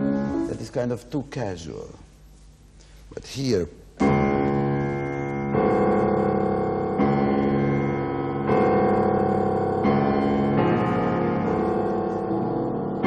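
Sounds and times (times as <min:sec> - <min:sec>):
piano chords: 0:00.0 - 0:01.2, 0:04.0 - 0:13.0.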